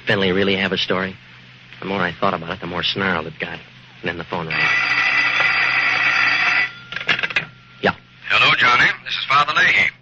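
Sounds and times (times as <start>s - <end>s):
telephone bell ringing: 4.5s - 8.6s.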